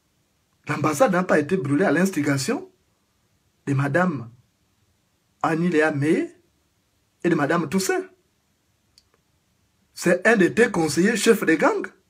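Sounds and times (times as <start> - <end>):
faint click: 8.9 - 9.3
faint tick: 8.9 - 9.3.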